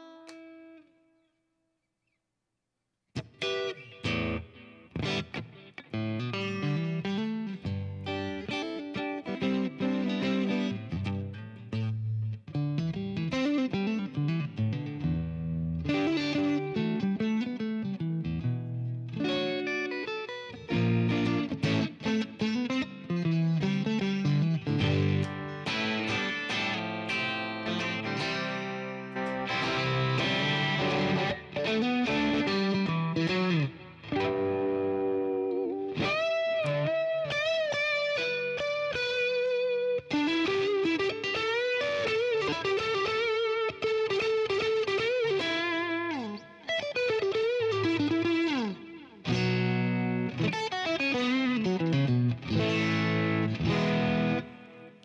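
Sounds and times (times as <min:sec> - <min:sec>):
electric guitar chords and lead: 0:03.2 - 0:55.0.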